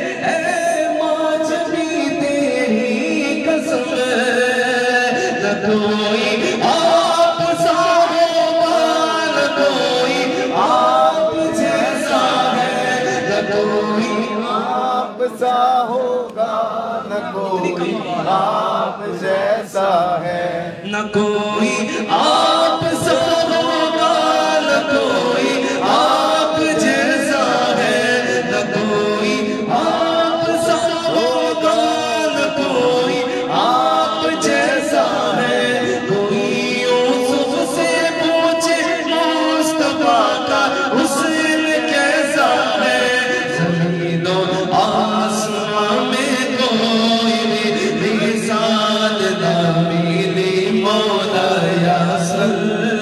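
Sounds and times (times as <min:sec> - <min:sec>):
man singing into a microphone: 0:00.0 - 0:53.0
voices singing along: 0:00.0 - 0:53.0.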